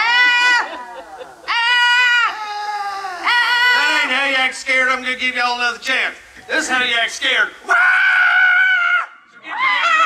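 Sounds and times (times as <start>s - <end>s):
man screaming: 1.5s - 4.2s, 7.7s - 10.0s.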